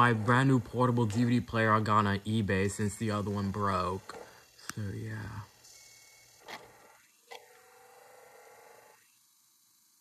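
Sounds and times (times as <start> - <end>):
disc spinning up whine: 0.0 - 10.0
disc drive clicks: 6.3 - 9.0.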